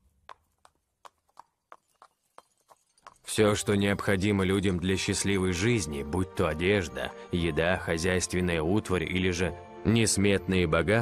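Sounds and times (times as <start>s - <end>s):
horse hooves on stone: 0.0s - 5.2s.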